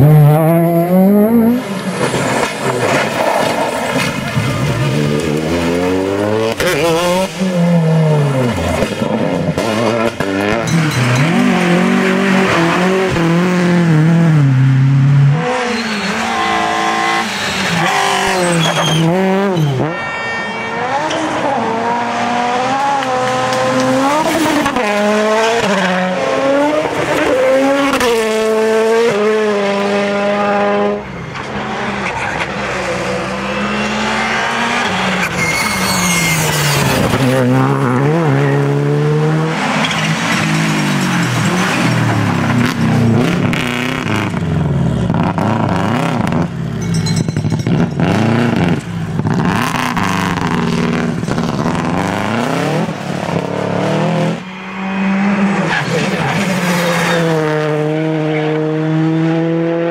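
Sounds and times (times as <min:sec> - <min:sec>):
rally car engines revving: 0:00.0 - 0:59.9.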